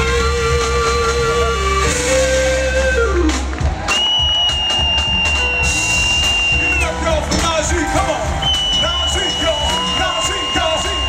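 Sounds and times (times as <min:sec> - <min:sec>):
funk band playing: 0:00.0 - 0:11.0.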